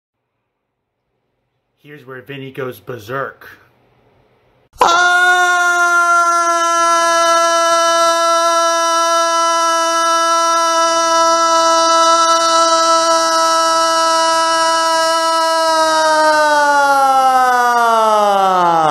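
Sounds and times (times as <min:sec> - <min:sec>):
man screaming: 0:04.8 - 0:18.9.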